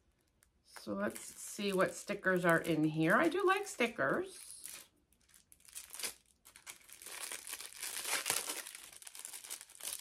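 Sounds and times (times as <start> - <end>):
packaging crinkling: 0.0 - 3.5, 4.3 - 10.0.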